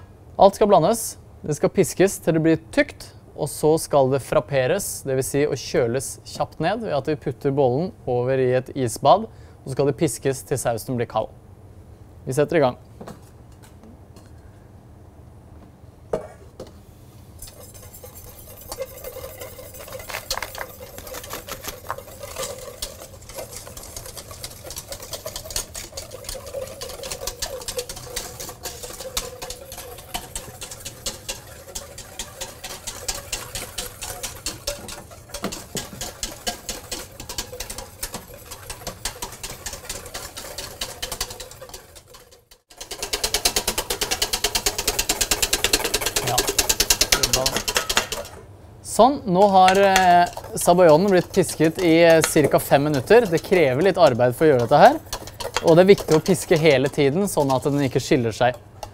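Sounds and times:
wire whisk beating a metal bowl: 0:17.4 - 0:48.4, 0:49.3 - 0:58.9.

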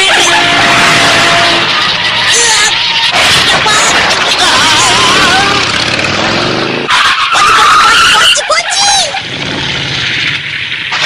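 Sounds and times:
tyre screech: 0:00.0 - 0:10.2
scooter engine running hard: 0:04.6 - 0:06.6.

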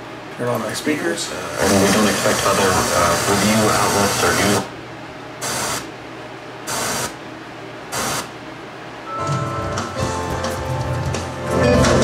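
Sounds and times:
radio static bursts: 0:01.4 - 0:04.7, 0:05.4 - 0:05.9, 0:06.7 - 0:07.2, 0:07.9 - 0:08.3
music from radio speakers: 0:09.2 - 0:12.0.

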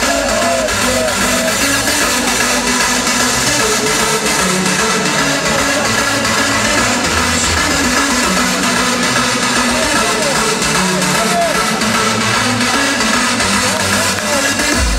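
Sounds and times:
loud hardstyle electronic music: 0:00.0 - 0:14.9.

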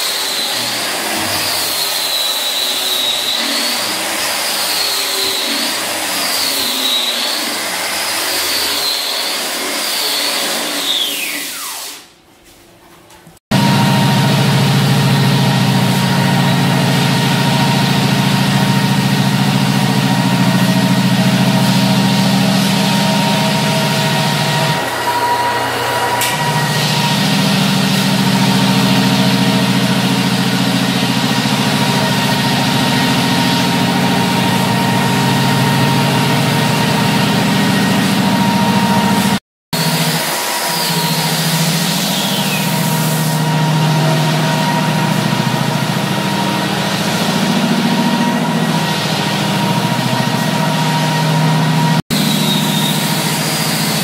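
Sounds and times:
floor sander running: 0:00.0 - 0:11.9, 0:13.5 - 0:54.0.

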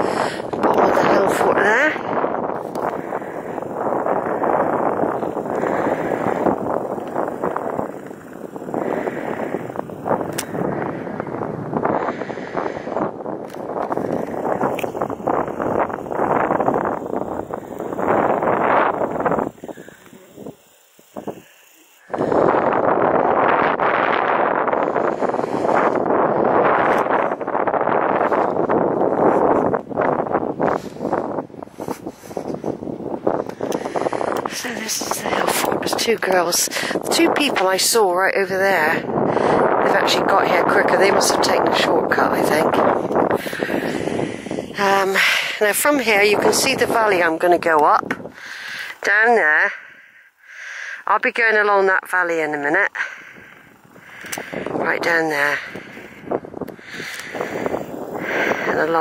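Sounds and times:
wind buffeting microphone: 0:00.0 - 0:50.1, 0:51.0 - 0:59.0.

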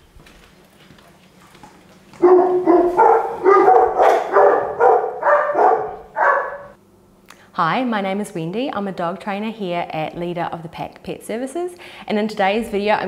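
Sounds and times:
large dogs barking: 0:02.2 - 0:06.8.

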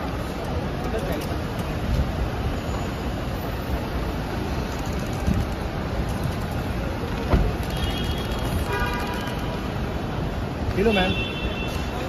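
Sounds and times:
traffic rumble: 0:00.0 - 0:12.0
thump: 0:07.3 - 0:07.5.

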